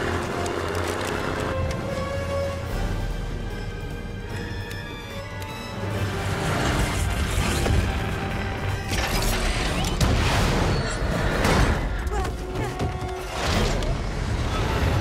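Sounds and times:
orchestral score: 0.0 - 15.0.

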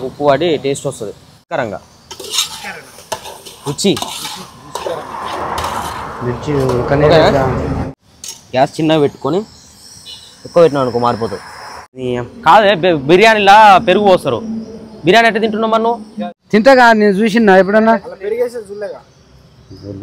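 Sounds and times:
ladle scraping cooking pot: 2.1 - 6.7.

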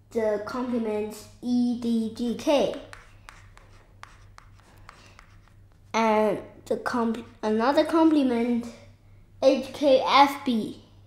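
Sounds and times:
chalk writing on blackboard: 2.6 - 5.7.

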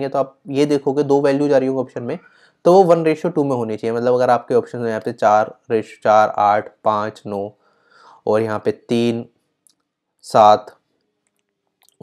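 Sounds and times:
man speaking: 0.0 - 7.5, 8.1 - 9.3, 10.3 - 10.7.

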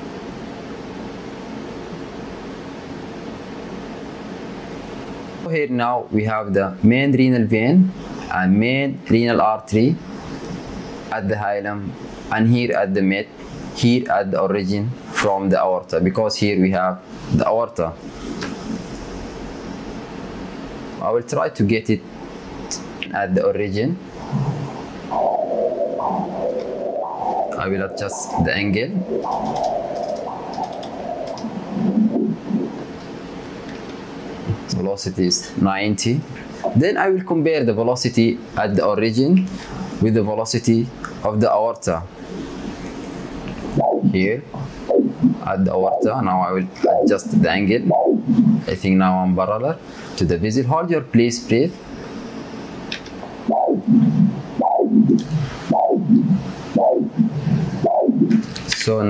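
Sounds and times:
pulsing doppler blood flow whoosh: 24.1 - 33.4, 46.0 - 48.7, 53.4 - 58.5.

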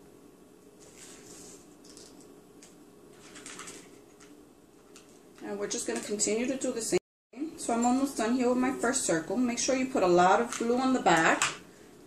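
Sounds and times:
rustling and scraping of plastic: 0.8 - 2.2, 3.1 - 5.3.

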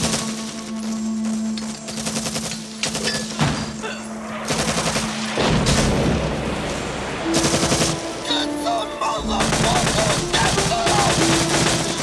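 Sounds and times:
film score held notes: 0.0 - 12.0
machine-gun fire: 9.4 - 12.0.

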